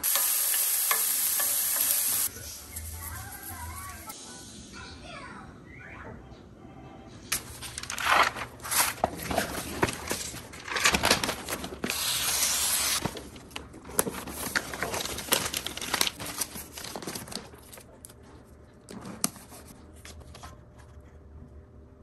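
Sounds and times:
rustling and crinkling handling: 7.3s - 21.2s.

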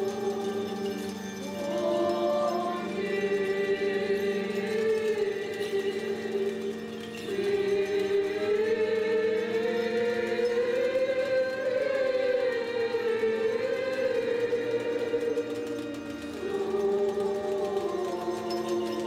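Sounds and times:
choir singing liturgical chant: 0.0s - 19.0s.

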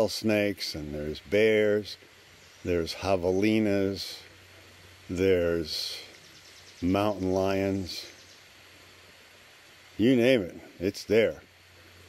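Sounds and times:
outdoor ambient hiss: 0.0s - 12.0s.

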